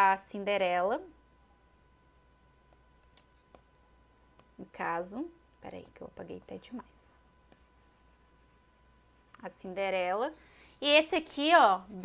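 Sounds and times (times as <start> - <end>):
stylus scratching on glass screen: 7.5 - 9.8.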